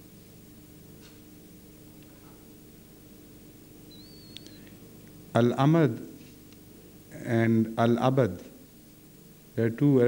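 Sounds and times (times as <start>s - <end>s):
low hum and hiss: 0.0s - 10.0s
faint wavering high whistle: 3.9s - 4.7s.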